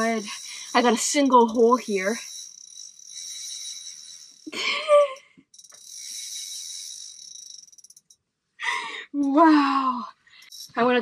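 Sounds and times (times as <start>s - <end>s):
fishing reel drag buzzing: 0.0s - 8.2s, 10.4s - 11.0s.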